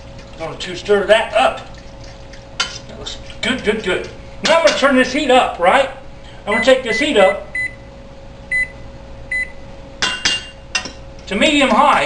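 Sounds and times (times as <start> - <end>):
steady hum: 0.0 - 12.0
touchpad beeps: 6.6 - 7.8, 8.5 - 9.5.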